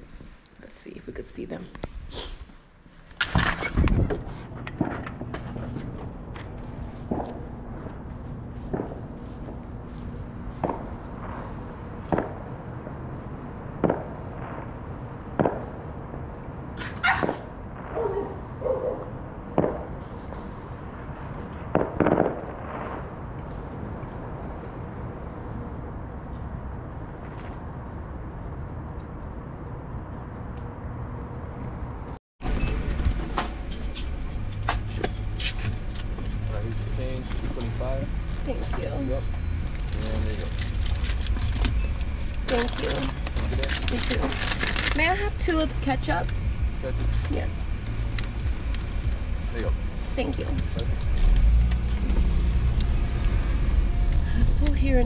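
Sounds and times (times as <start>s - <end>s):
steady low hum: 0.0s - 55.0s
fireworks bangs: 3.2s - 24.6s.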